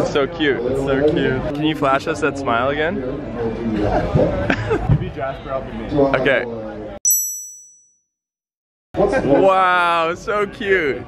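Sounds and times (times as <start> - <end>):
high bright ding: 7.1 - 8.0.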